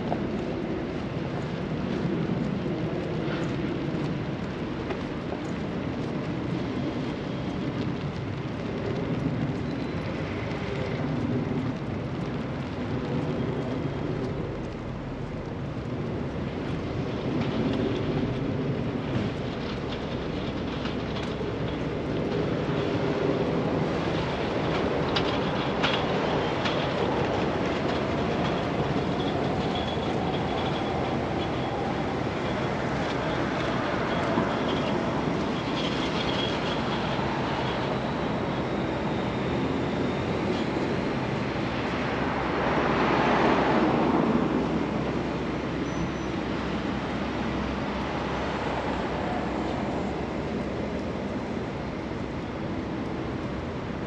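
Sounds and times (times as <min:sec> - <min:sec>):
train running on tracks: 0:00.0 - 0:54.0.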